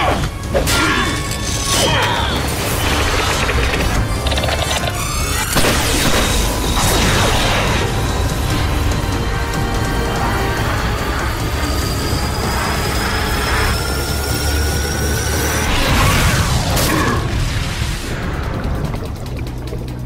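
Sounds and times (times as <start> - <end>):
dramatic background music: 0.0 - 20.0
high whine: 0.2 - 19.5
sci-fi energy blasts and booms: 2.4 - 8.5.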